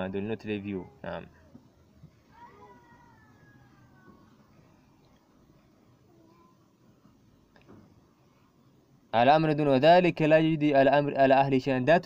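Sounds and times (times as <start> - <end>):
faint high-pitched cry: 0.7 - 5.0, 5.9 - 6.8.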